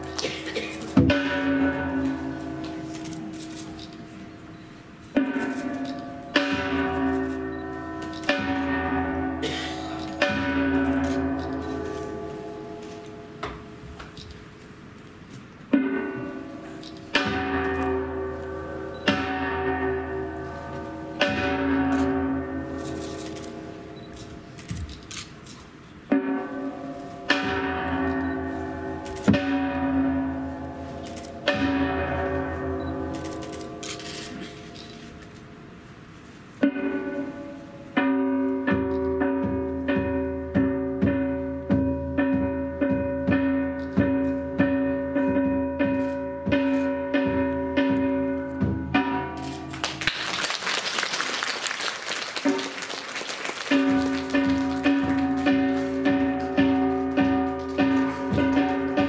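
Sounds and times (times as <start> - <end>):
ritual bell ringing: 0.8 - 13.4, 52.4 - 59.0
struck metal percussion ringing: 0.9 - 2.9, 4.1 - 11.6, 15.7 - 22.8, 31.4 - 33.8.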